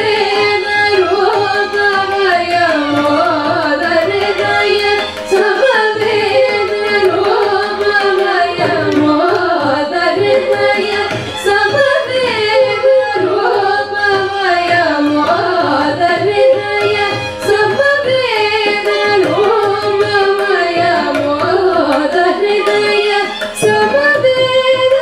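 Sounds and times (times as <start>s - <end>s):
mridangam drumming: 0.0s - 25.0s
violin: 0.0s - 25.0s
women singing ornamented melody: 0.0s - 25.0s.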